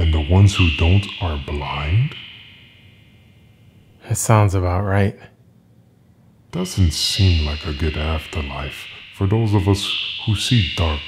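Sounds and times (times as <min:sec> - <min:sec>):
high sustained music tone: 0:00.0 - 0:04.6, 0:06.5 - 0:11.0
faint room hiss: 0:00.0 - 0:11.0.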